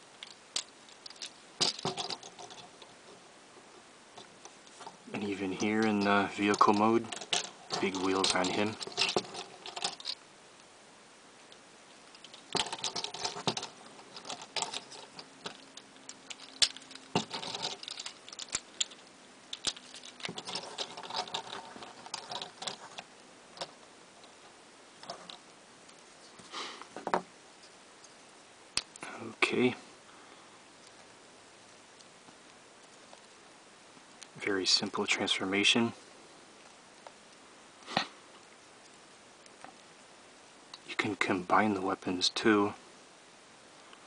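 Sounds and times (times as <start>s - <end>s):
plastic toy parts clicking: 5.8s - 10.2s, 12.1s - 23.0s.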